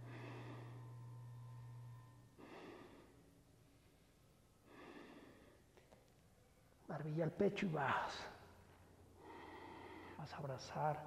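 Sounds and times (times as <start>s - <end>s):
man breathing deeply: 0.0s - 5.8s, 9.2s - 10.2s
steady low hum: 0.0s - 11.0s.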